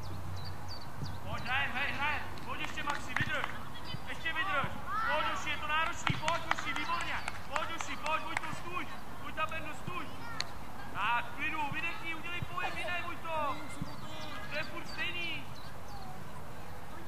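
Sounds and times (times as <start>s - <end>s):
children shouting: 4.4s - 5.7s
ball being kicked: 5.9s - 6.4s.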